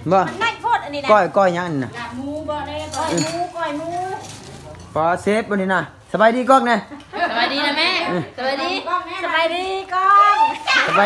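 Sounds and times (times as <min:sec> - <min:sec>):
high-pitched voices greeting: 0:07.6 - 0:11.0.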